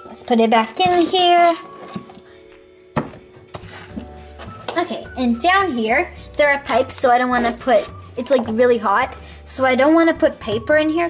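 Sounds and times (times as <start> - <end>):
faint background music: 0.0 - 11.0
ring binder knocking on wooden shelf: 3.0 - 3.4.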